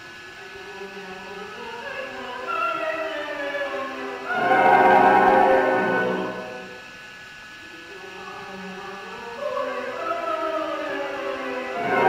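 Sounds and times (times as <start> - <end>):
operatic singing: 0.4 - 6.8, 7.9 - 12.0
orchestra playing: 4.3 - 6.8, 11.8 - 12.0.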